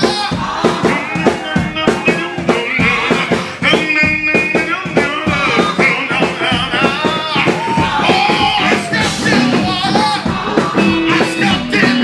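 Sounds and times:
band playing: 0:00.0 - 0:12.0
man singing into a microphone: 0:00.0 - 0:12.0.

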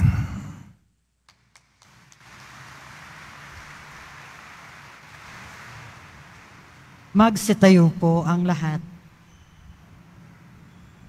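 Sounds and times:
background room hiss: 0:00.0 - 0:11.0.

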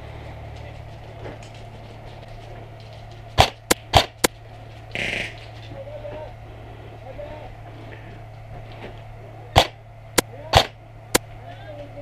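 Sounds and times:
airsoft rifle shots: 0:03.4 - 0:04.3, 0:05.0 - 0:05.4, 0:09.5 - 0:10.8.

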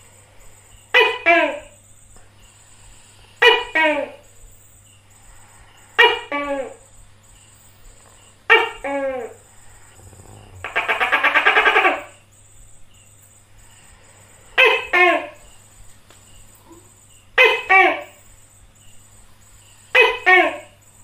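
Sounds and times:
gecko chattering rattle: 0:04.2 - 0:15.6.

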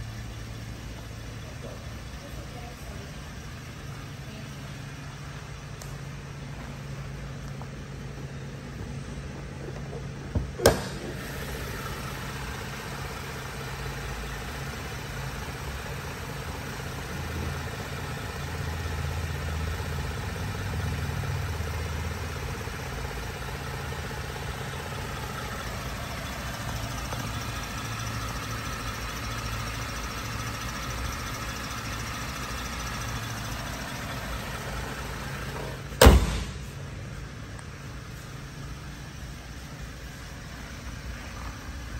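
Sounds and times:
car engine idling: 0:00.0 - 0:41.9
sharp double knock: 0:36.0 - 0:36.6
car hood slammed shut: 0:36.0 - 0:36.7.

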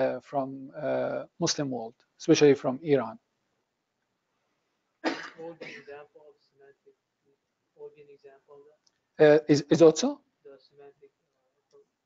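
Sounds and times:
man clearing throat: 0:05.0 - 0:05.9.

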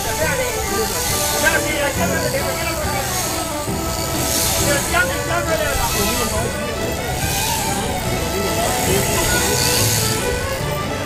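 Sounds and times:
music playing: 0:00.0 - 0:11.0
people talking: 0:00.0 - 0:11.0.

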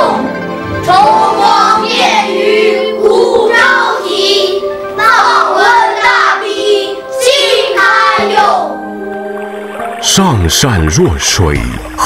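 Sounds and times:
children's chorus singing: 0:00.0 - 0:08.8
instrumental backing: 0:00.0 - 0:12.0.

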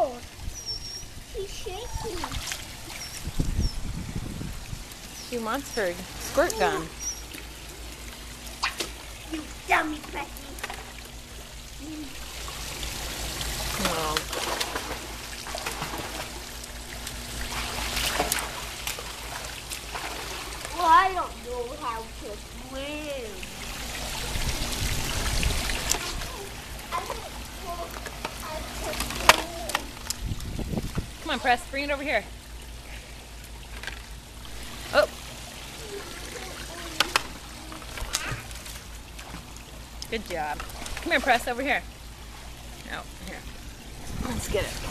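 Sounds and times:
small water splashes: 0:00.0 - 0:22.6, 0:23.2 - 0:44.9
low steady hum: 0:00.0 - 0:44.9
pool water sloshing: 0:00.0 - 0:44.9.

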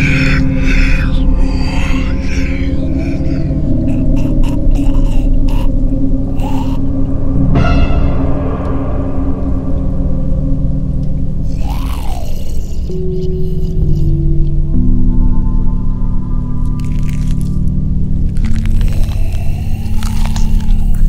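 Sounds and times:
low droning tones: 0:00.0 - 0:21.0.

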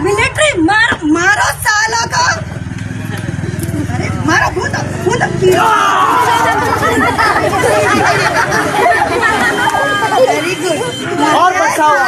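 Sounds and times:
many voices shouting: 0:05.4 - 0:12.0.

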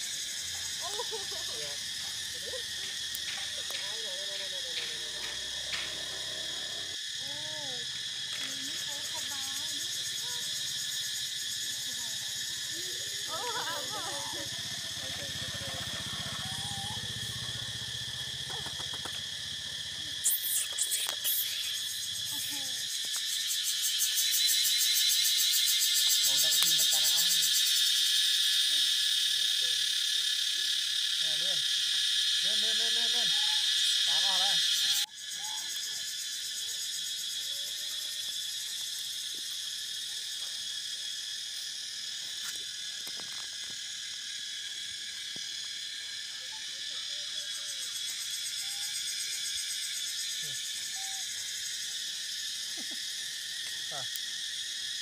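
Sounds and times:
high-pitched insect chorus: 0:00.0 - 0:55.0
short wavering calls: 0:12.6 - 0:25.1, 0:33.0 - 0:36.2, 0:46.3 - 0:52.0.

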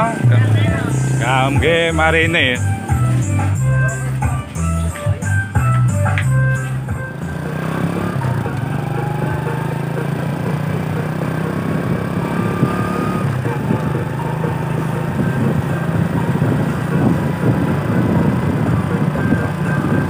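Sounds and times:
vehicle engine droning: 0:00.0 - 0:20.0.

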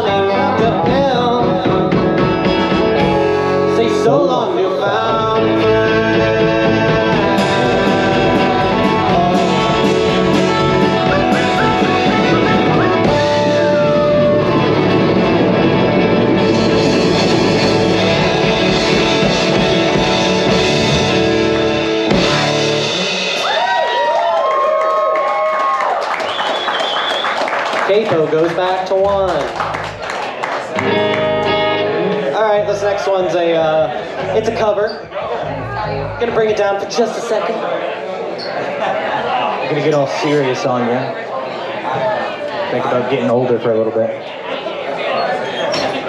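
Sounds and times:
person singing: 0:00.0 - 0:02.4, 0:03.0 - 0:15.8
keyboard: 0:00.0 - 0:23.4
electric and acoustic guitars: 0:00.0 - 0:24.0, 0:27.9 - 0:37.4
bass guitar: 0:00.0 - 0:24.4, 0:29.0 - 0:30.1, 0:30.8 - 0:36.9
drums: 0:00.0 - 0:36.9.

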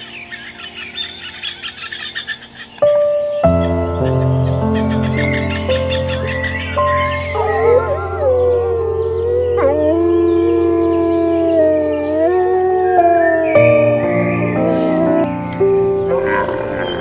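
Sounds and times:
background music with drone: 0:00.0 - 0:17.0
long wavering howls: 0:05.9 - 0:15.3.

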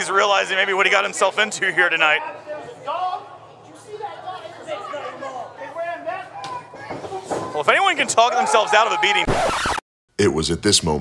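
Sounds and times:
crowd chatter: 0:00.0 - 0:09.1.

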